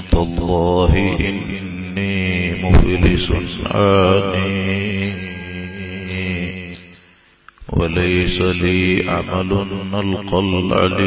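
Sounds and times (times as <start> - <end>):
steady high-pitched whine: 2.5 - 7.5.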